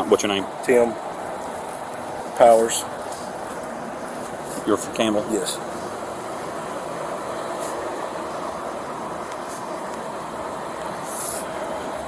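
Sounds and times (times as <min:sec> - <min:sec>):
vehicle engines idling: 0:00.0 - 0:12.0
short high hisses: 0:07.6 - 0:07.9, 0:11.0 - 0:11.7.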